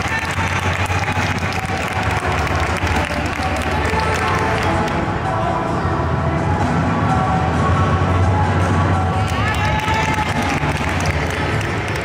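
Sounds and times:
audience applause: 0.0s - 4.7s, 9.3s - 12.0s
music over loudspeakers: 0.0s - 12.0s.

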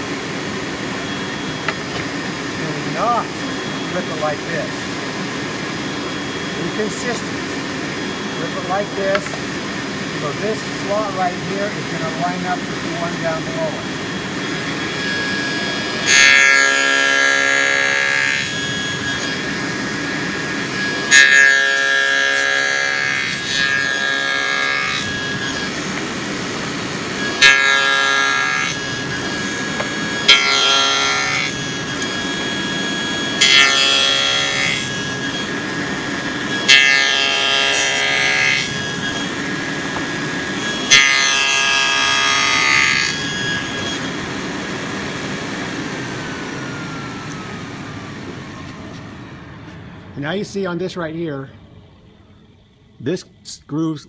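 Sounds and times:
table saw running: 0.0s - 50.4s
saw blade cutting wood: 10.2s - 45.8s.

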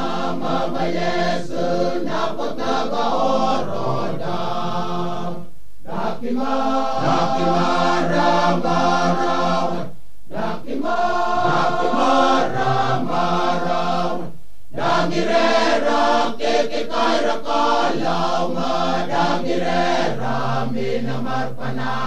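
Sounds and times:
male choir singing in harmony: 0.0s - 22.0s.

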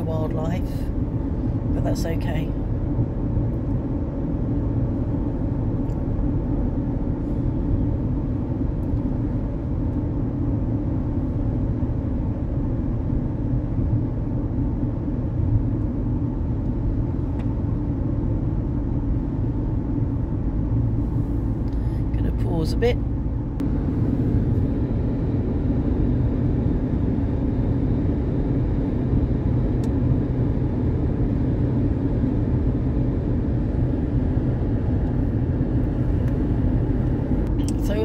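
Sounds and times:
car road noise at highway speed: 0.0s - 38.0s.

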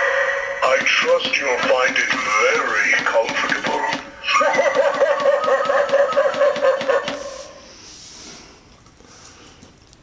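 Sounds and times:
toy figure recorded laughing: 4.2s - 7.2s.

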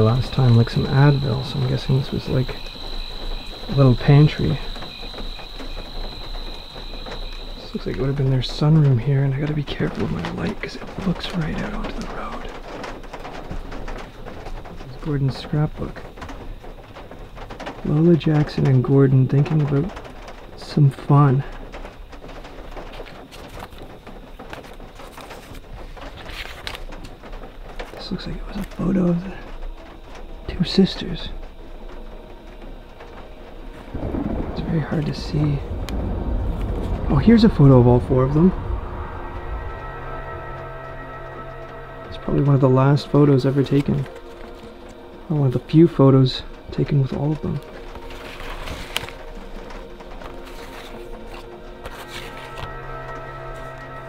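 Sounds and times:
soft clicks and crackles: 1.4s - 39.8s, 43.8s - 54.0s
paper rustling: 22.8s - 28.8s, 46.9s - 54.0s.

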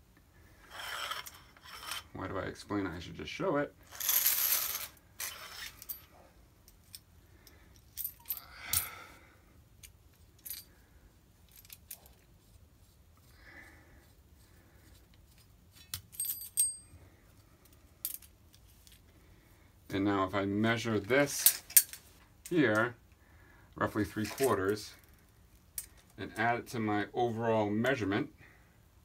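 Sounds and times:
metal scraping rasp: 0.6s - 2.1s.

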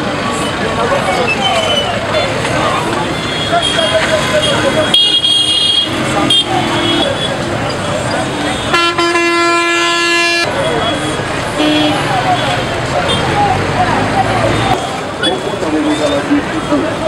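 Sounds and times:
street noise: 0.0s - 17.0s
voices: 0.0s - 17.0s
vehicle horn blast: 8.6s - 11.0s.

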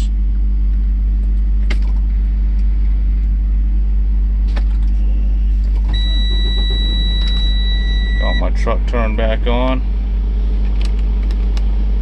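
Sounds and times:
truck cab hum: 0.0s - 12.0s
high electronic warning tone: 5.0s - 8.8s.

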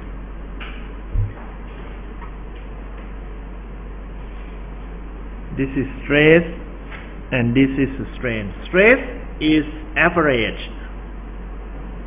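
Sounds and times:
steady low hum: 0.0s - 12.0s
low thump: 1.1s - 1.4s.

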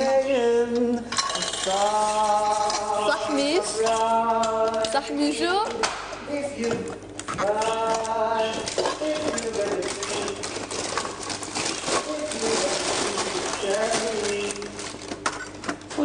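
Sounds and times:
people humming: 0.0s - 5.8s, 6.4s - 15.3s
people talking: 2.6s - 10.4s, 11.9s - 14.8s
paper bags rustling: 7.2s - 16.0s.

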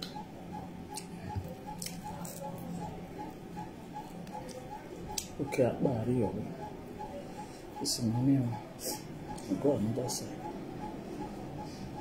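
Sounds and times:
faint regular ticking: 0.0s - 12.0s
chewing and lip smacking: 0.9s - 5.4s.

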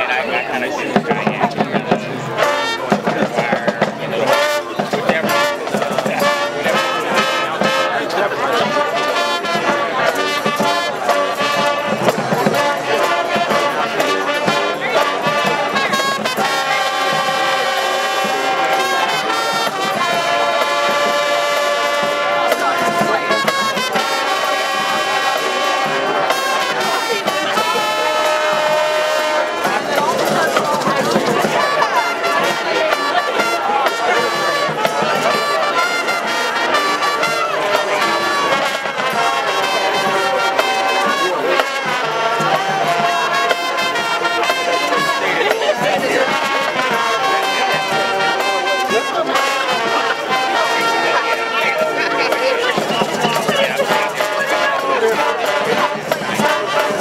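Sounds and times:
marching band playing: 0.0s - 57.0s.

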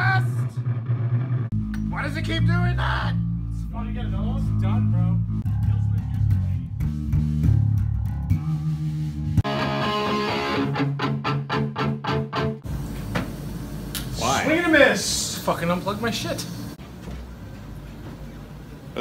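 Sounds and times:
harsh pulsing distorted noise: 0.0s - 1.5s
electric bass low notes: 0.0s - 12.9s.

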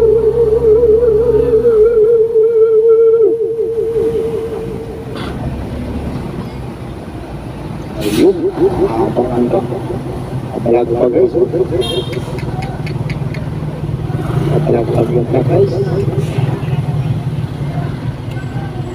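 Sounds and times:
person singing wavering note: 0.0s - 5.2s
traffic noise: 0.0s - 18.9s.

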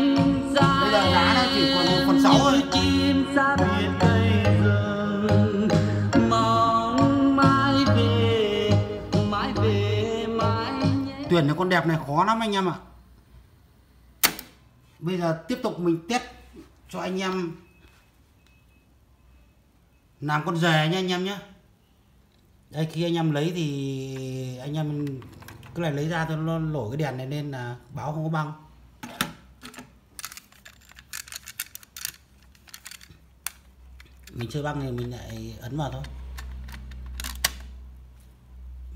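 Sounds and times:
sharp click: 14.2s - 14.6s
cassettes clicking and rattling: 29.2s - 37.8s.

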